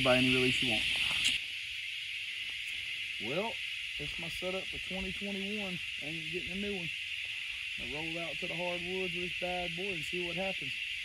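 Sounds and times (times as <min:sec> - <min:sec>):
insects droning: 0:00.0 - 0:11.0.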